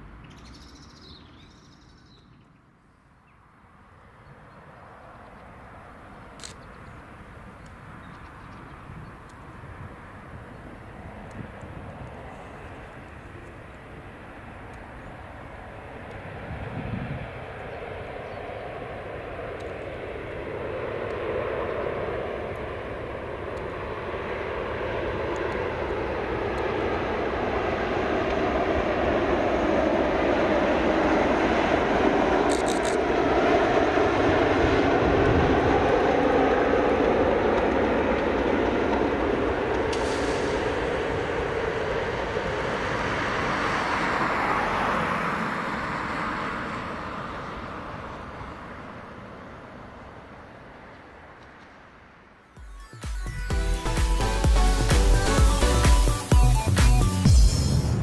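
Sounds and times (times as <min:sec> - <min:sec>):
distant diesel locomotive engine: 0:00.0 - 0:58.0.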